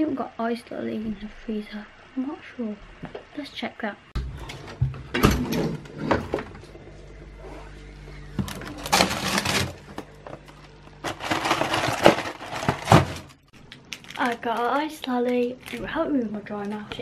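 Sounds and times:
steady low hum: 0.0 - 17.0
freezer drawer being handled: 8.4 - 13.4
frozen food packets rustling: 8.5 - 16.8.

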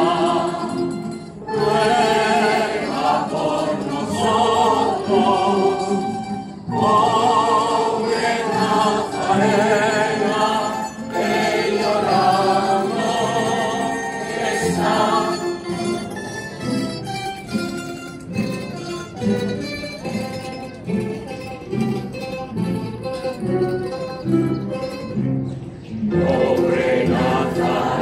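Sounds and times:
choir singing a hymn: 0.0 - 16.2, 26.1 - 28.0
plucked guitar chords: 0.0 - 28.0.

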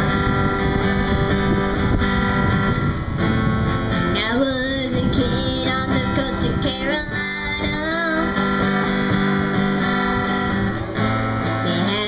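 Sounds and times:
acoustic guitar strumming: 0.0 - 12.0
boy singing: 4.1 - 8.8, 11.6 - 12.0.

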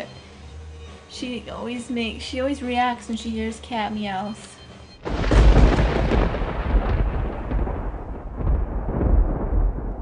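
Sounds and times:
deep rumbling noise: 5.0 - 10.0.

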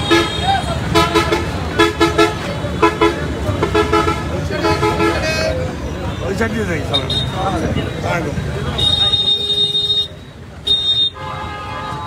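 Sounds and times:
street noise: 0.0 - 12.0
voices: 0.0 - 12.0.

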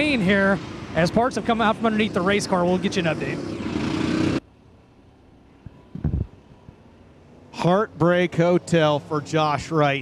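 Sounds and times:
race car engine at full throttle: 0.0 - 4.5, 5.8 - 10.0.

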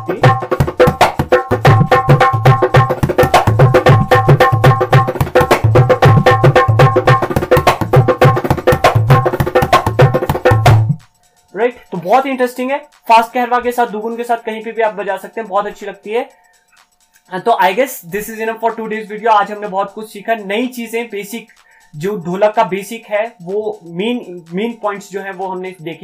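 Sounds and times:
dholak drumming: 0.0 - 26.0.

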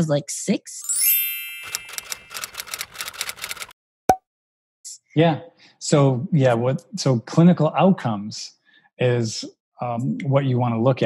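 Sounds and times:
bright chime: 0.8 - 2.4
typewriter-like clicks: 1.6 - 3.7.

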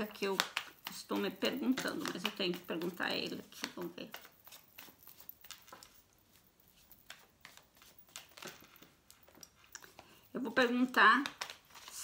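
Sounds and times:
cards being shuffled: 0.0 - 12.0.

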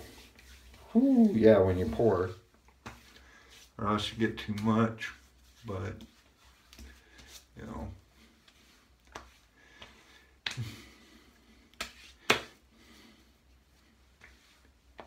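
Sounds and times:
hands slapping skin: 2.7 - 3.2, 8.4 - 10.9, 11.6 - 12.6, 14.1 - 15.0.

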